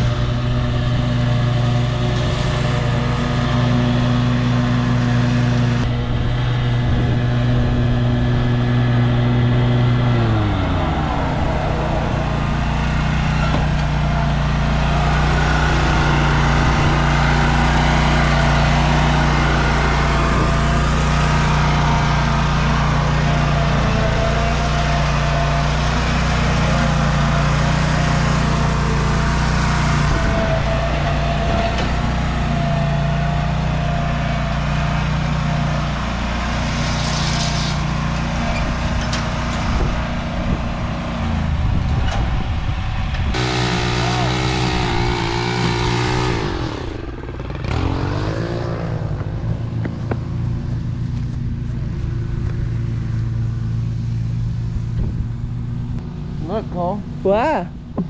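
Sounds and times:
engine-like sound: 0.0 - 58.0
lawn mower engine running: 0.0 - 58.0.

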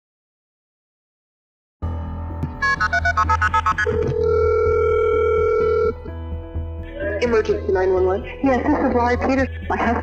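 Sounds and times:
music with low drone: 1.8 - 10.0
telephone ringback tone: 2.6 - 6.1.

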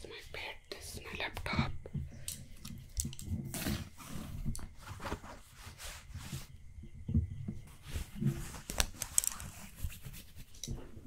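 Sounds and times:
scratching on cloth bed cover: 3.5 - 6.6, 7.7 - 10.6.

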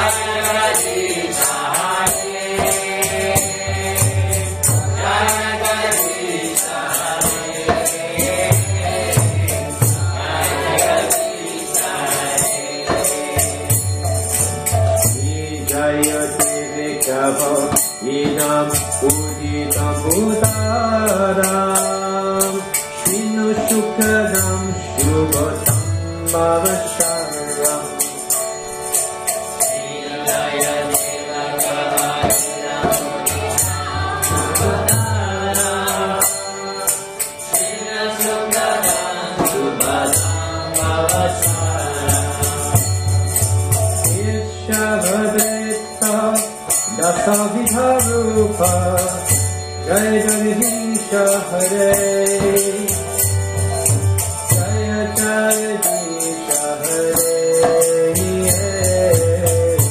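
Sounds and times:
bright metallic percussion strokes: 0.0 - 59.9
hand cymbals striking: 0.0 - 59.9.

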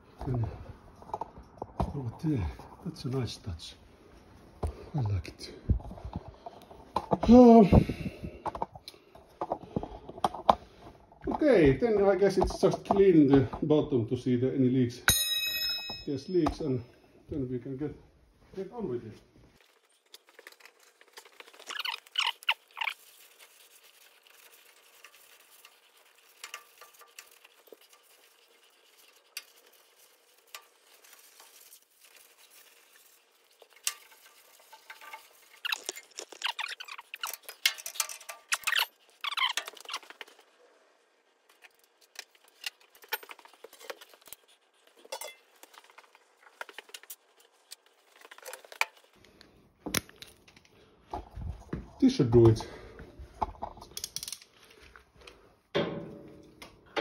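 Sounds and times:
small metallic clinks: 15.1 - 16.7
rubbing and scraping: 18.6 - 49.7.

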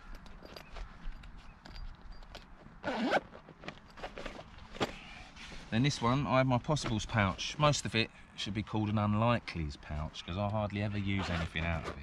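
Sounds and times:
zipper pulled closed: 2.8 - 3.3, 11.2 - 12.0.

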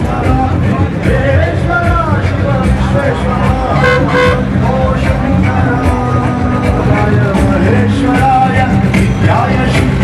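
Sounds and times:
loud amplified music: 0.0 - 10.0
steady bass: 0.0 - 10.0
held horn-like note: 3.8 - 4.6.

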